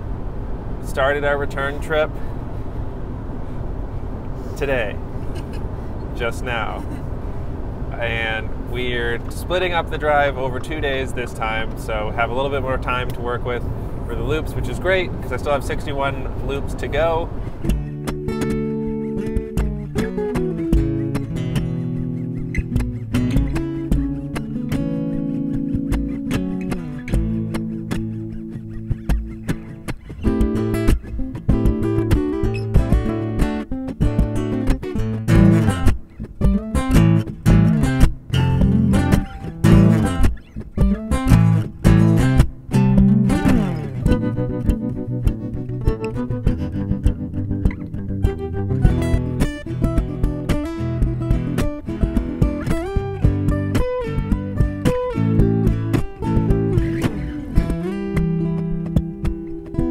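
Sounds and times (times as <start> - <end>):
plucked guitar riffs: 0.0 - 59.9
repeating bass line: 17.6 - 59.9.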